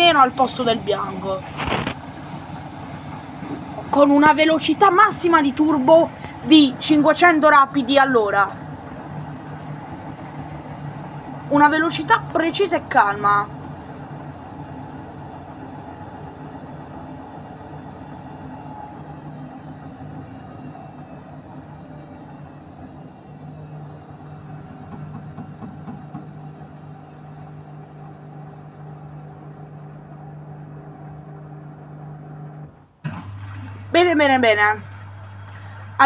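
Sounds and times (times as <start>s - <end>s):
washing machine motor hum: 0.0s - 36.0s.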